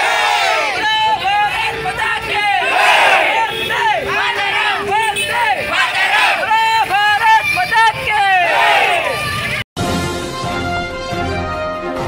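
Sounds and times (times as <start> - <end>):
crowd chanting slogans: 0.0 - 7.4, 8.1 - 9.4.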